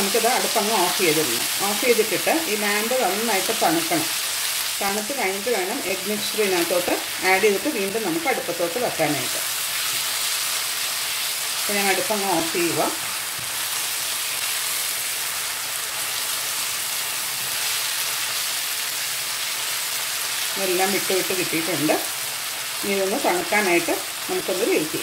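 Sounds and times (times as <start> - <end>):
meat sizzling in a pan: 0.0 - 25.0.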